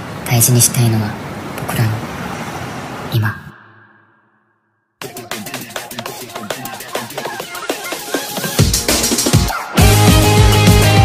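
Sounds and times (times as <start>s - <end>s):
dense traffic-like hiss: 0.0s - 3.6s
sped-up pop music: 5.0s - 11.0s.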